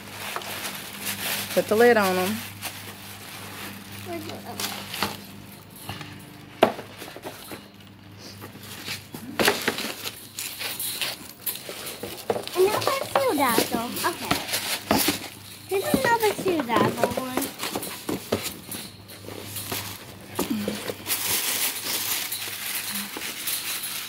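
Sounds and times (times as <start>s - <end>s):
tissue paper rustling: 0.0s - 5.2s, 19.3s - 24.0s
voices: 1.6s - 2.4s, 3.9s - 5.6s, 12.4s - 15.0s, 15.6s - 17.6s.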